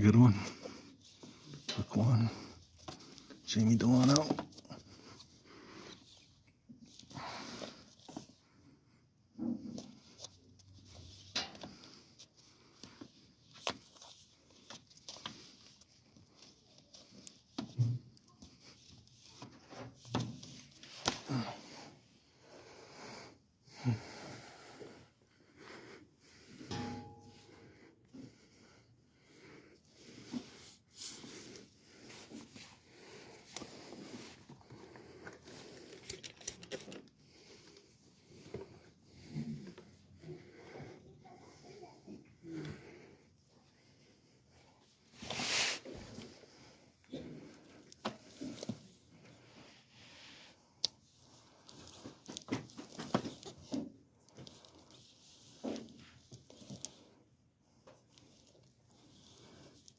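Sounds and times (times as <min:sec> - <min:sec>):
knocks and rustles of handling: 0:00.4 - 0:08.5, 0:09.3 - 0:21.3, 0:51.0 - 0:57.1.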